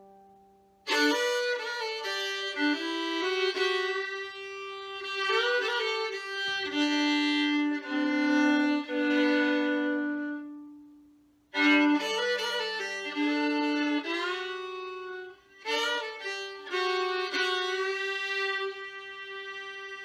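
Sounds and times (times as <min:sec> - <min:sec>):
solo fiddle playing: 0:00.8 - 0:10.9, 0:11.5 - 0:20.0.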